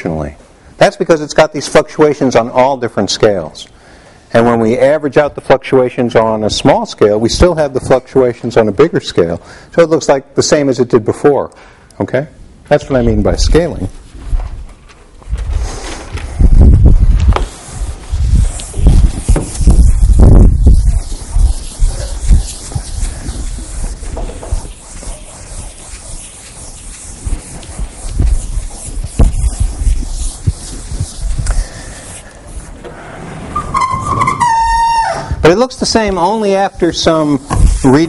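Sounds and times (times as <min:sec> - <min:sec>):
microphone handling thumps: 0:14.2 - 0:24.8, 0:27.2 - 0:31.7, 0:37.5 - 0:37.9
chalkboard being erased: 0:15.4 - 0:32.8, 0:33.6 - 0:38.0
person speaking: 0:35.4 - 0:38.0.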